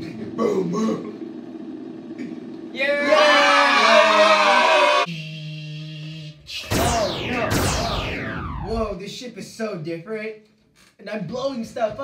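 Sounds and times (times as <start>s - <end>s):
swooping sounds falling in pitch: 6.5s - 9.0s.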